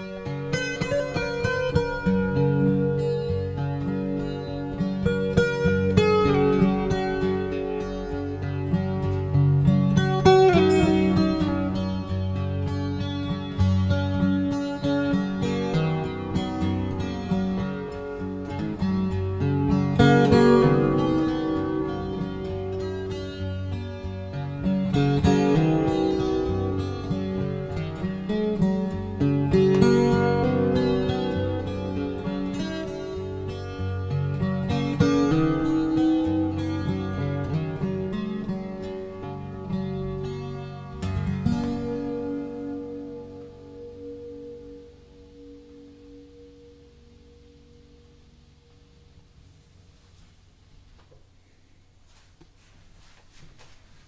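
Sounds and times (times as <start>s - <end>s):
acoustic guitar: 0.0s - 54.0s.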